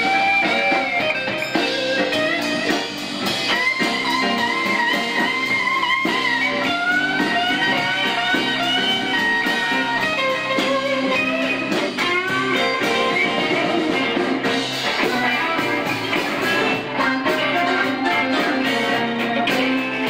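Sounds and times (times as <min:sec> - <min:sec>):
blues-rock band playing: 0:00.0 - 0:20.0
electric lead guitar bending notes: 0:00.0 - 0:20.0.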